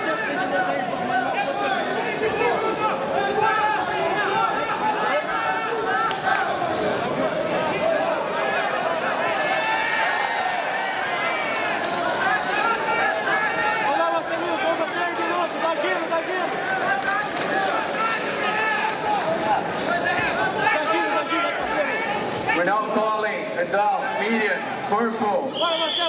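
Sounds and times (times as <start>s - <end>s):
crowd shouting: 0.0s - 22.8s.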